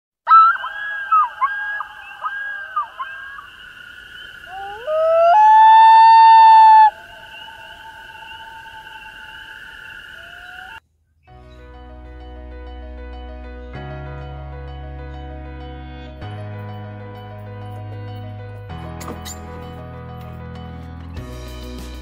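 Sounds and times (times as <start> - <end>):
wailing call: 0.2 - 10.8.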